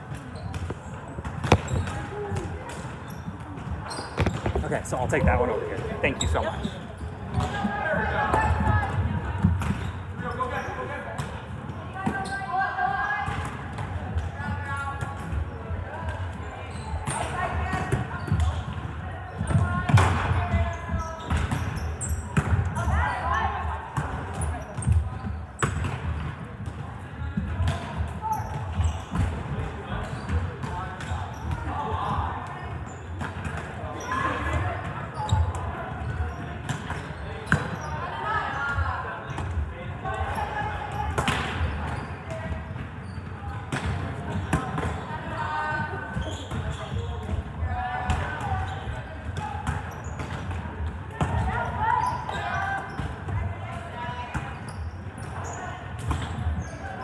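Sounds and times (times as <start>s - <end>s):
chatter of many voices echoing: 0.0s - 57.0s
balls bouncing on wooden floor: 0.4s - 6.7s.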